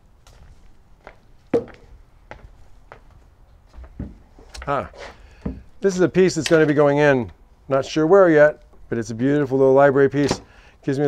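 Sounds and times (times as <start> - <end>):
footsteps on wooden floor: 0.3 - 4.2.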